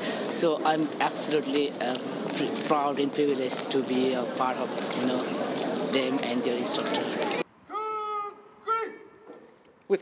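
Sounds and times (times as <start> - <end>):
man shouting a command: 7.7 - 9.2.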